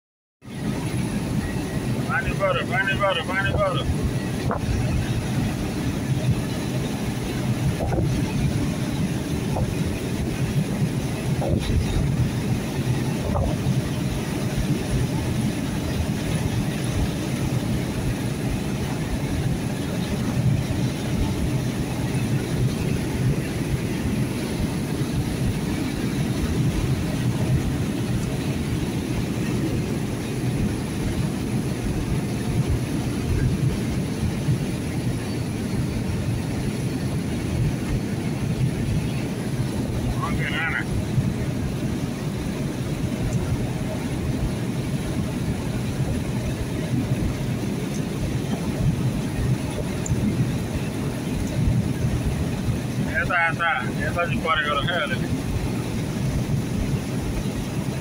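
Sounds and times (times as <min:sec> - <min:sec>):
car driving at highway speed: 0:00.4 - 0:58.0.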